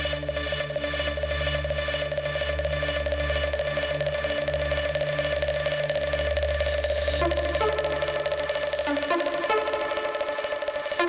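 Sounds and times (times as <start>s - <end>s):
electronic dance music: 5.9s - 11.0s.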